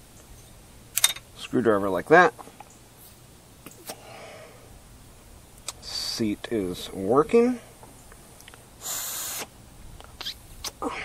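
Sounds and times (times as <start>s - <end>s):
compressed air blast: 8.8s - 9.6s.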